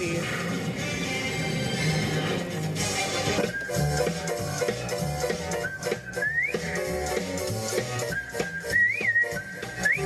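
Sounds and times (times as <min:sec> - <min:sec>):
band backing music: 0:00.0 - 0:10.0
whistled melody: 0:03.4 - 0:10.0.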